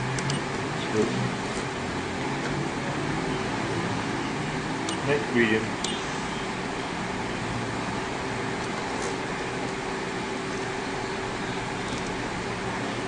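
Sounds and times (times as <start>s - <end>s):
equipment humming and hissing: 0.0s - 13.0s.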